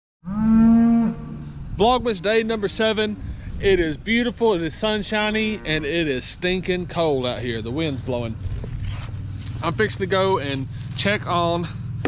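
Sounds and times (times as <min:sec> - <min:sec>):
cow mooing: 0:00.2 - 0:01.6, 0:05.3 - 0:06.2.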